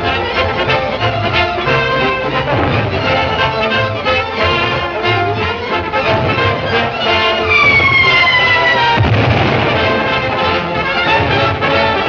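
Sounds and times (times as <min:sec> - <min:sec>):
orchestral cartoon music: 0:00.0 - 0:12.0
loud blast: 0:02.3 - 0:04.6, 0:05.9 - 0:12.0
falling whistle: 0:06.7 - 0:09.2.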